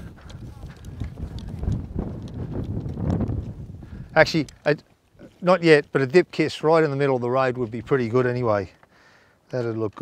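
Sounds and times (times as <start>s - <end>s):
wind buffeting microphone: 0.0s - 4.6s.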